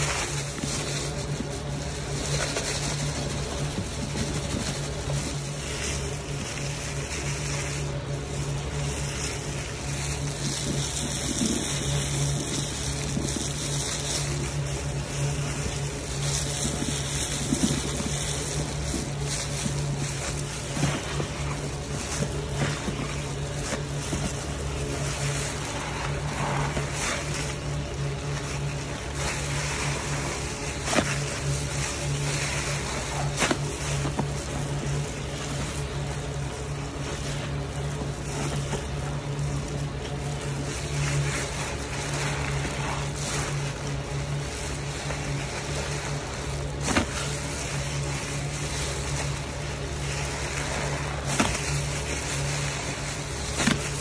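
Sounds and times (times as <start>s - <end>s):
sponge squelching with foam: 0.0s - 54.0s
steady low hum: 0.0s - 54.0s.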